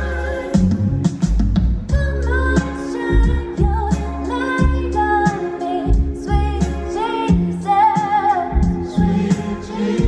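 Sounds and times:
bass and drum beat: 0.0s - 10.0s
woman singing: 1.9s - 10.0s.

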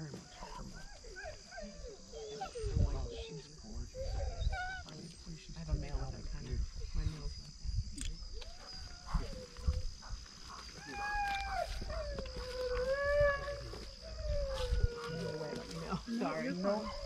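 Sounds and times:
dog whining: 0.2s - 3.3s, 3.9s - 5.0s, 10.6s - 17.0s.

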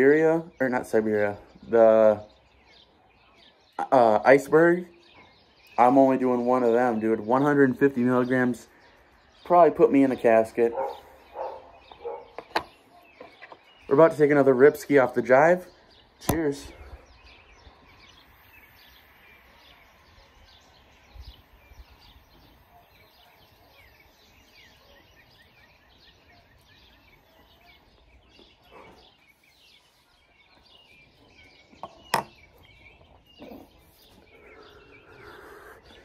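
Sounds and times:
small birds chirping: 0.0s - 36.0s.

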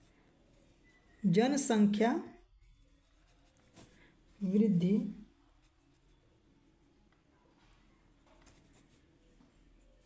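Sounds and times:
pen scratching on paper: 8.4s - 9.0s.

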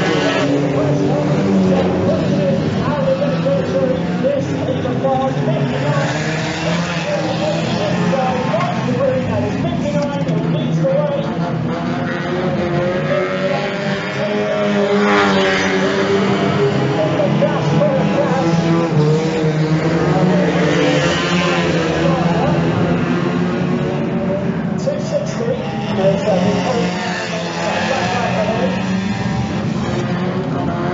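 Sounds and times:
racing car engines revving: 0.0s - 30.9s.

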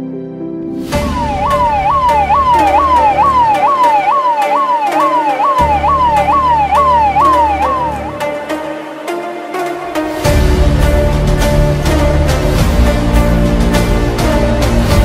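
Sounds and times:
police siren sweeping: 1.0s - 8.8s
electronic dance music: 1.1s - 8.8s.

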